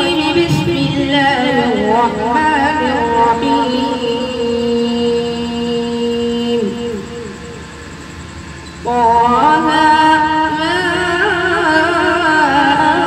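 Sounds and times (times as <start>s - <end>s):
boy reciting melodically: 0.0s - 7.5s, 8.8s - 13.0s.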